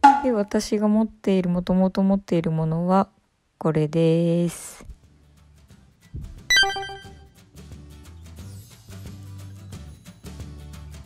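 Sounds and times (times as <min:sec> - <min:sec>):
faint background music: 0:00.0 - 0:11.0
bright chime: 0:06.5 - 0:07.2.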